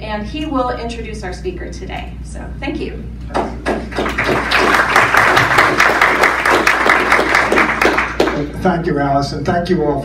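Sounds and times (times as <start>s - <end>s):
audience applauding: 3.4s - 8.6s.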